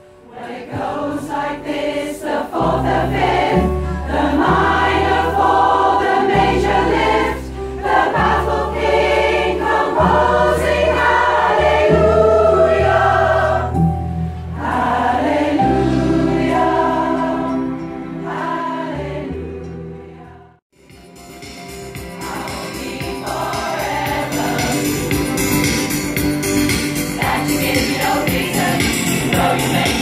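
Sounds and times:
choir singing in harmony: 0.1 - 20.6, 22.0 - 26.2, 27.0 - 30.0.

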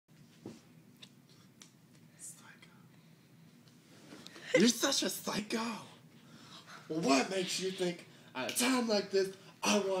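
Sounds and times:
faint whisper: 2.1 - 2.9.

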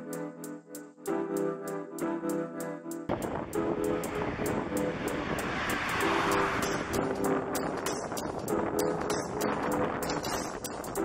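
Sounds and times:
music with steady beat: 0.0 - 11.0
car passing: 3.1 - 9.1
street traffic: 3.1 - 10.5.

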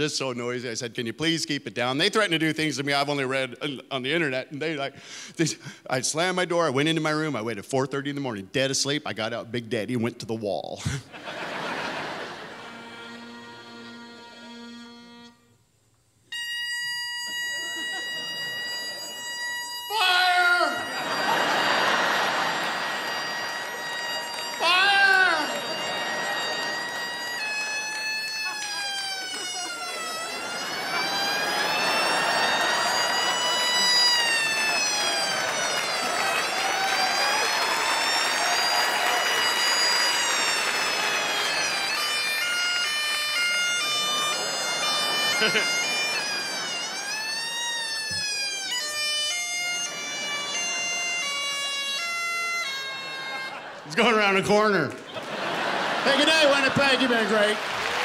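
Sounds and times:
audience laughter: 10.9 - 12.9, 17.5 - 19.2, 20.7 - 24.6, 25.4 - 42.2, 43.5 - 47.5, 52.7 - 58.0
bagpipes wailing over drones: 12.4 - 15.4, 16.3 - 53.7.

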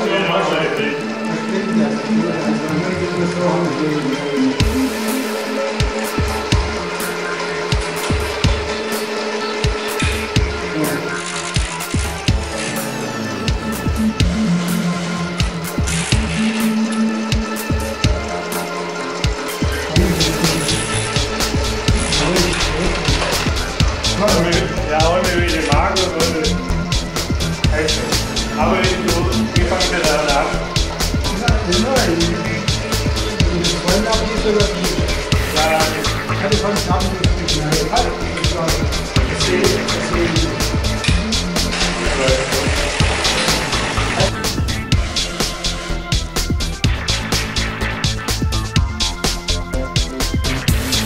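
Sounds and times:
background music: 0.0 - 51.0
machine humming: 0.0 - 51.0.

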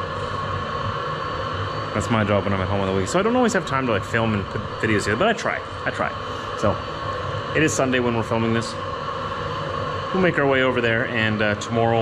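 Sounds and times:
engine heater humming: 0.0 - 12.0.

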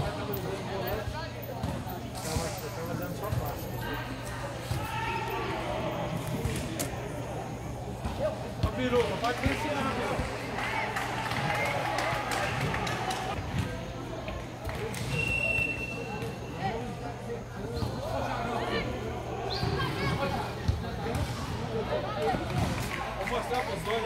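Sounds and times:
boys calling and shouting: 0.0 - 11.2, 15.9 - 22.5
high whistle-like tone: 15.1 - 16.3.

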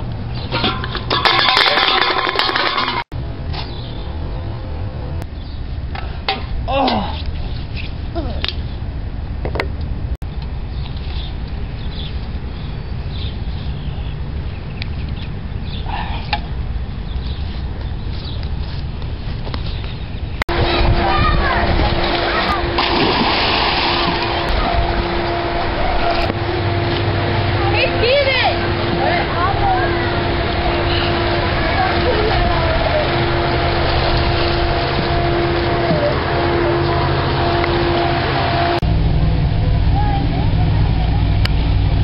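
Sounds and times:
wind rumbling on microphone: 3.2 - 42.0
splash into swimming pool: 22.3 - 24.5.

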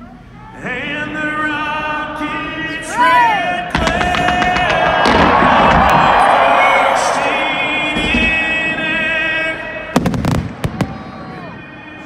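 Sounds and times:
pyrotechnic bangs: 3.7 - 9.3, 9.9 - 11.0.

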